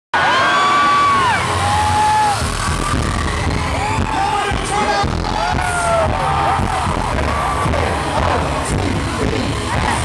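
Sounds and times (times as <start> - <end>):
band's heavy bass beat: 1.2 - 10.0.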